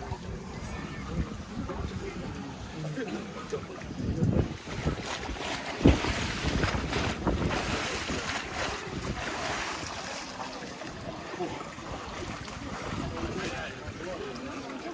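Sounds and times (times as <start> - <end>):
water lapping: 0.0 - 14.9
water splashing in pool: 0.0 - 14.9.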